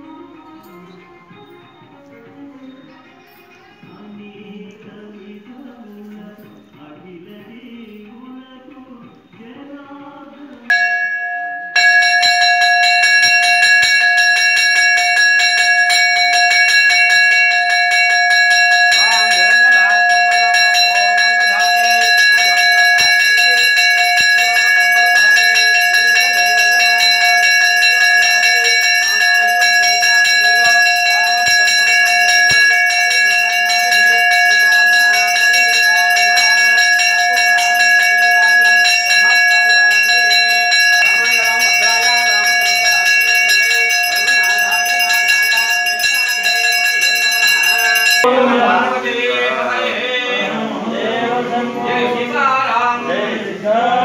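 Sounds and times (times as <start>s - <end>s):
temple bell ringing rapidly: 10.7s - 49.7s.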